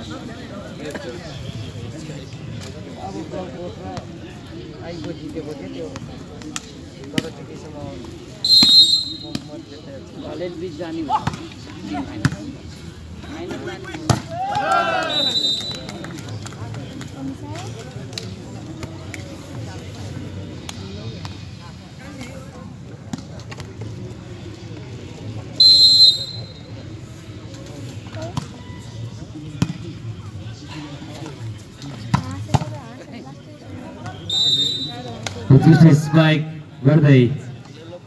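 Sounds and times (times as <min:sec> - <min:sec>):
spectator chatter: 0:00.0 - 0:38.0
referee's whistle blasts: 0:08.4 - 0:09.4, 0:15.1 - 0:15.9, 0:25.6 - 0:26.7, 0:34.2 - 0:35.1.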